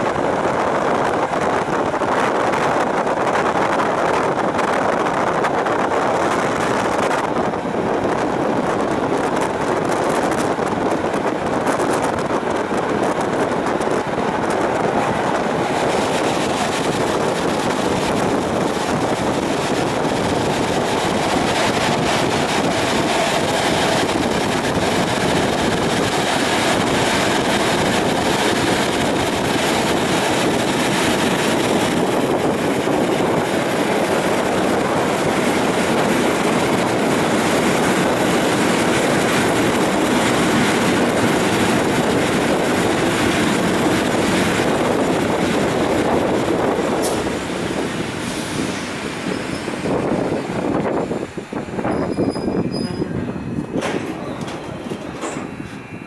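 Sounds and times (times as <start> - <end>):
train clicks: 0.0 - 55.9
train wheels rumbling on rails: 0.0 - 56.0
faint high brake squeal: 48.3 - 49.8, 51.8 - 53.3.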